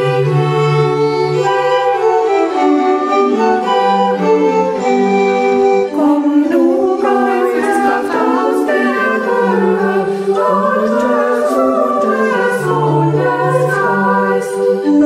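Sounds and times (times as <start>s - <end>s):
women's choir singing a hymn: 5.9s - 15.0s.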